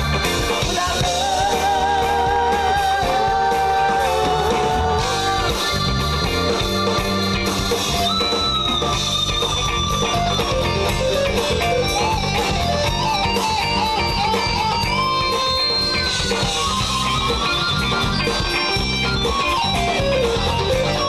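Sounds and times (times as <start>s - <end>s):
bass: 0.0s - 21.0s
drums: 0.0s - 21.0s
guitar: 0.0s - 21.0s
keyboards: 0.0s - 21.0s.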